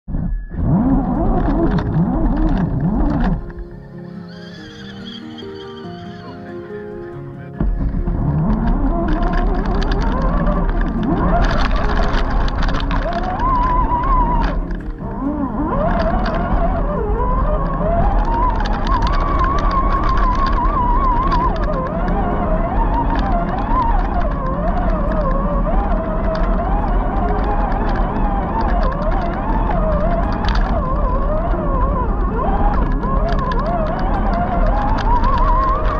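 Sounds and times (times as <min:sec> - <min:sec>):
low rumble: 0:00.1 - 0:03.8, 0:07.6 - 0:35.9
electric motor and gears whining: 0:00.3 - 0:06.3, 0:07.6 - 0:35.9
tyres crunching on loose rock: 0:07.6 - 0:35.9.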